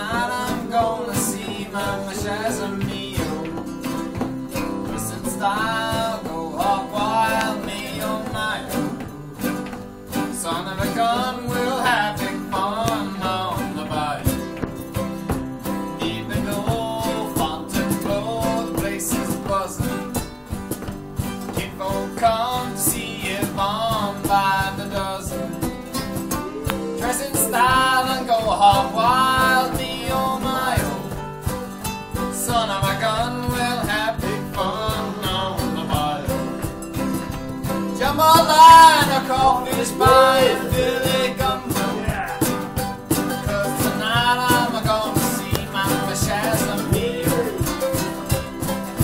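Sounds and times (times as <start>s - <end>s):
guitars strumming country song: 0.0s - 49.0s
wavering lead melody: 26.0s - 28.3s.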